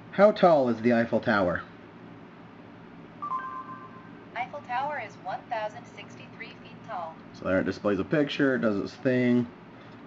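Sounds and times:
electronic beep stepping down: 0:03.2 - 0:04.3.

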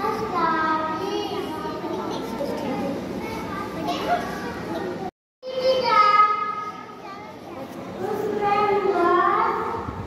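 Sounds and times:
children chattering: 0:00.0 - 0:09.8
girl's voice through microphone: 0:00.0 - 0:10.0.

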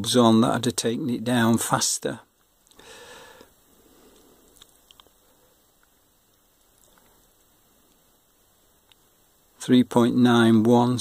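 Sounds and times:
faint small clicks: 0:03.4 - 0:05.2, 0:05.8 - 0:09.1.

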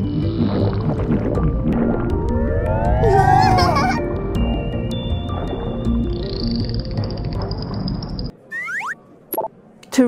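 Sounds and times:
cartoon background music: 0:00.0 - 0:09.0.

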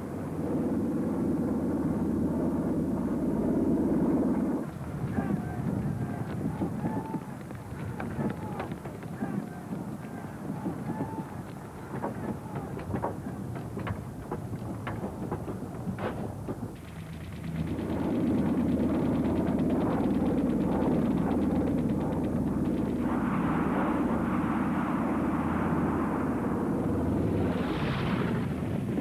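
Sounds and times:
aircraft engine: 0:00.0 - 0:29.0
rapid gunfire rattle: 0:11.6 - 0:23.0.

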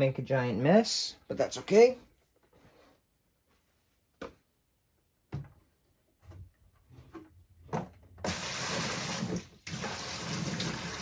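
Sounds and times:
knocks and clicks of objects handled: 0:05.3 - 0:08.2.

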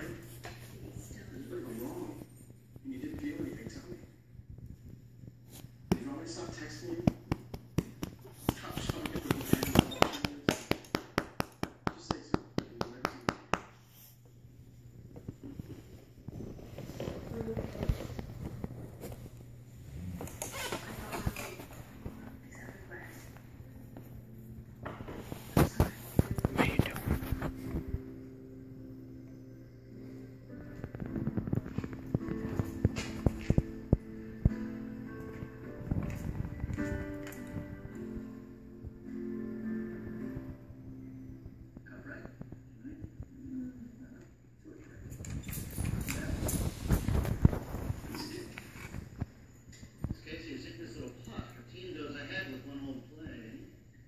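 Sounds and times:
music with sustained notes: 0:21.0 - 0:42.0.

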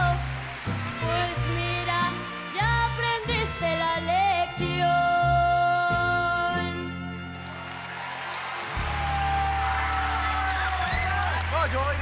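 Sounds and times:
audience cheering and applause: 0:00.0 - 0:03.5, 0:06.9 - 0:12.0
live band playing: 0:00.0 - 0:12.0.

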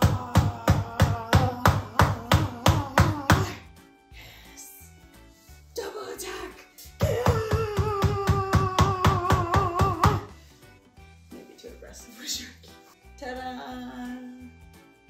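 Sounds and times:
meat tenderizer pounding: 0:00.0 - 0:03.5, 0:07.0 - 0:10.3
quiet music: 0:00.0 - 0:15.0.

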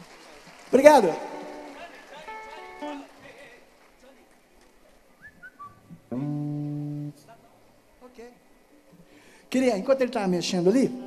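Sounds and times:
faint whistle-like tone: 0:05.2 - 0:05.9.

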